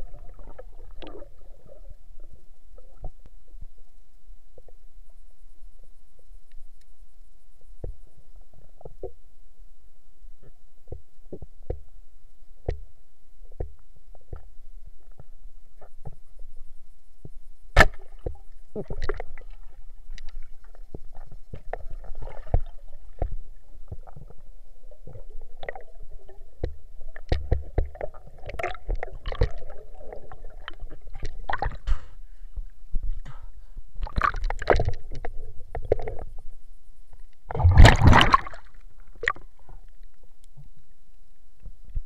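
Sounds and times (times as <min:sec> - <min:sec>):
muffled underwater rumble: 0:00.0 - 0:42.0.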